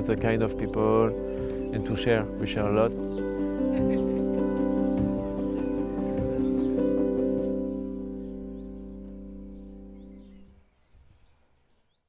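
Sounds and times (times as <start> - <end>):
background music: 0.0 - 10.5
faint bird chirps: 3.0 - 12.0.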